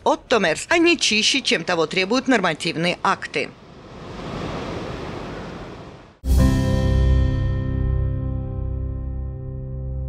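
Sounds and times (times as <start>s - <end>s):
waves breaking on sandy beach: 3.8s - 6.2s.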